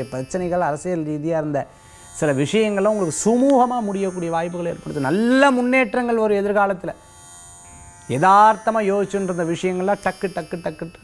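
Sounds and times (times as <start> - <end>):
man speaking: 0.0 - 7.0, 8.1 - 11.0.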